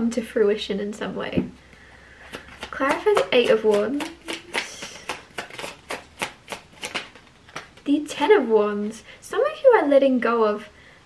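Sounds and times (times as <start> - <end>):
cards being shuffled: 2.2 - 7.9.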